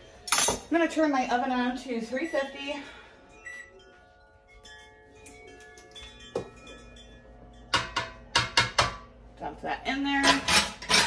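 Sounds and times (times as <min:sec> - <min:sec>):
ringing tones: 0:00.2 - 0:08.3.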